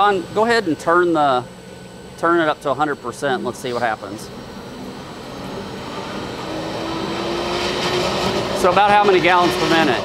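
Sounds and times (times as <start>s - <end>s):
cavitating pump running roughly: 0.0s - 10.0s
electric motor whine: 0.0s - 10.0s.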